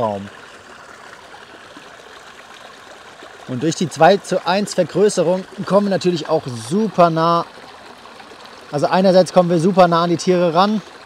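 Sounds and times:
stream flowing over rocks: 0:00.0 - 0:11.0.

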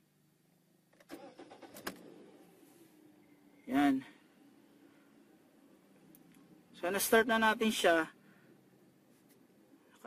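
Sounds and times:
car starter cranking: 0:00.9 - 0:02.5
car engine idling: 0:01.1 - 0:10.0.

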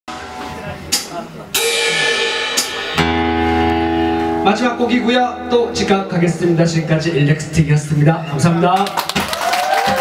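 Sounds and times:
cymbal crash: 0:01.6 - 0:04.4.

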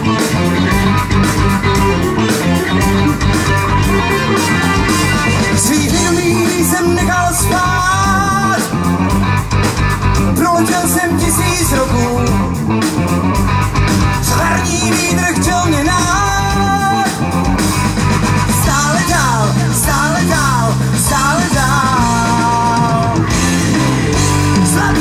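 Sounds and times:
live rock band playing: 0:00.0 - 0:25.0.

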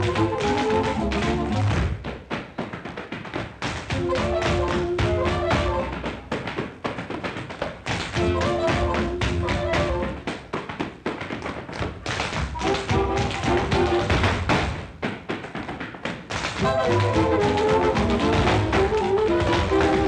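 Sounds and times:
tap shoes on hard floor: 0:00.0 - 0:20.0
jazz orchestra playing: 0:16.7 - 0:20.0.

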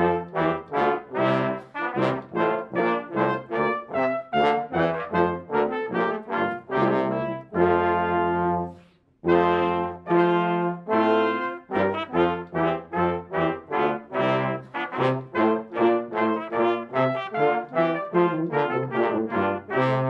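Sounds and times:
brass quintet playing: 0:00.0 - 0:20.0.

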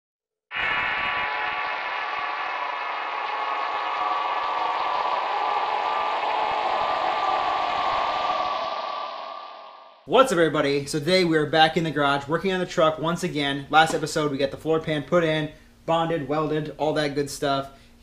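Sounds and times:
dense chord-like drone: 0:00.5 - 0:10.0.

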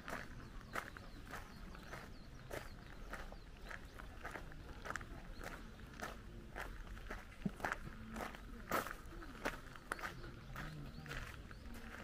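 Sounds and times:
footsteps on gravel: 0:00.0 - 0:12.0.

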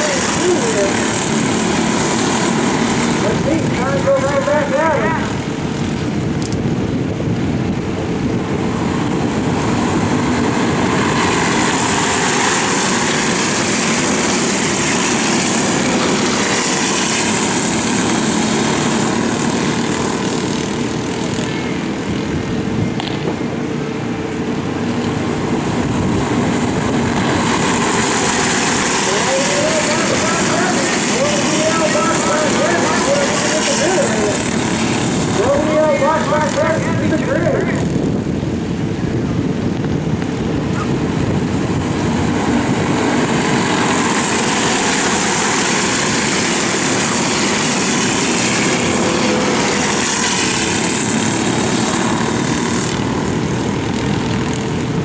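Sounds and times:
racing kart engines buzzing: 0:00.0 - 0:55.0
wind noise: 0:00.0 - 0:55.0
person speaking: 0:29.1 - 0:34.5.

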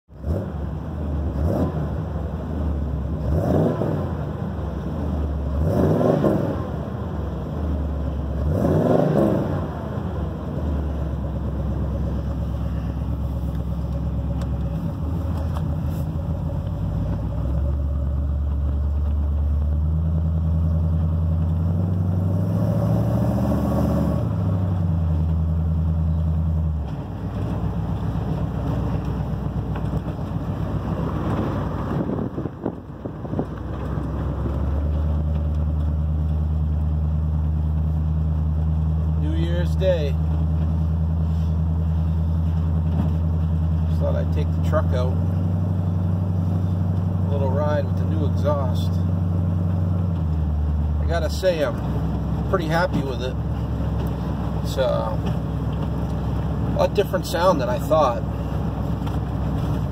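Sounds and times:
pickup truck engine revving: 0:00.1 - 0:59.9.

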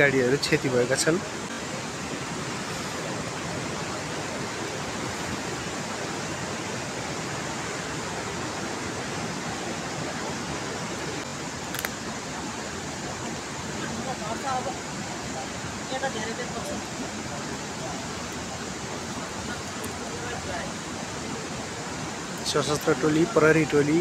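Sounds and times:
steady rushing noise: 0:00.0 - 0:24.0.

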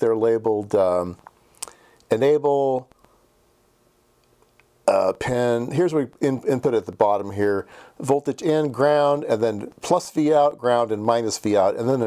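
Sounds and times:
faint steady hum: 0:00.0 - 0:12.0
man's voice: 0:04.9 - 0:12.0.

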